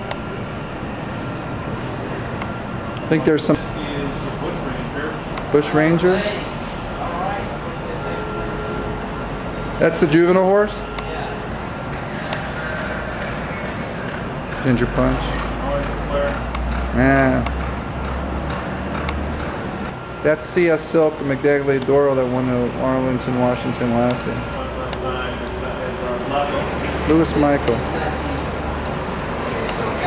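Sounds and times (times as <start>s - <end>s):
low hum: 0.0s - 30.0s.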